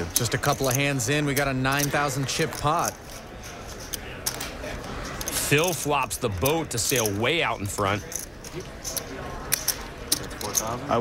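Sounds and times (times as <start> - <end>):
clay poker chips clicking: 0.0 - 11.0
faint voices: 0.0 - 11.0.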